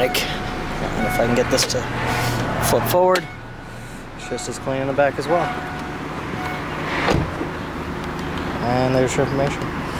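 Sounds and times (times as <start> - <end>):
dull thump: 7.0 - 7.5.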